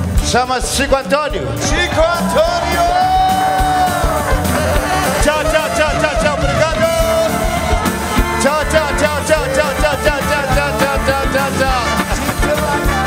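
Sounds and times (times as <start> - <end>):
live band music: 0.0 - 13.0
steady drum beat: 0.0 - 13.0.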